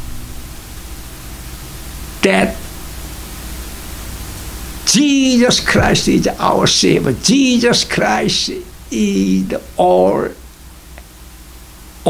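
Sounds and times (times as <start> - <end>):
faint low hum: 0.0 - 12.0
steady hiss: 0.0 - 12.0
man talking: 2.2 - 2.6, 4.9 - 10.4.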